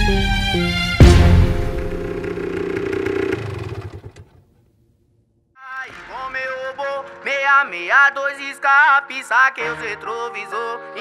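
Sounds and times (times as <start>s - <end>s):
motorcycle engine running: 1.5s - 4.4s
funk music with singing: 5.7s - 11.0s.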